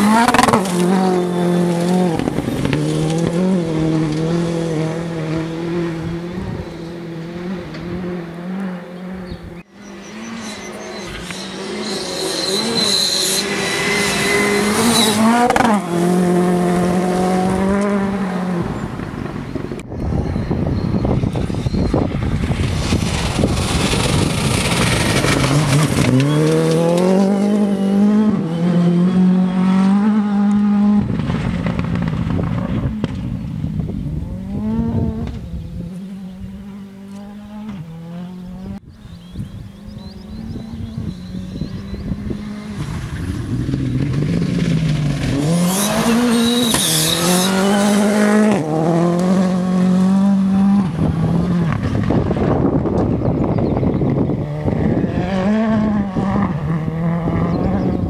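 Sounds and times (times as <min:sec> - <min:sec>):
rally car engine revving: 0:00.0 - 0:19.8, 0:21.0 - 0:58.0
gear upshifts: 0:00.0 - 0:19.9, 0:39.8 - 0:58.0.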